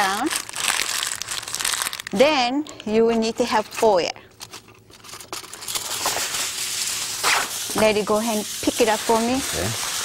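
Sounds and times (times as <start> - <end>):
aluminium foil crinkling: 0.0 - 2.4, 3.2 - 10.0.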